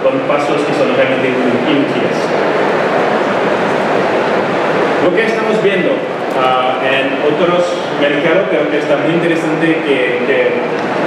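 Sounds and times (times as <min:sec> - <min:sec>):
loud hall background noise: 0:00.0 - 0:11.0.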